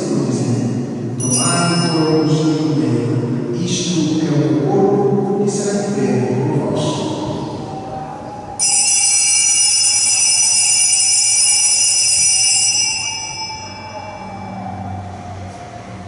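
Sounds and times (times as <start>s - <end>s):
altar bell ringing: 1.1s - 3.4s, 8.6s - 15.2s.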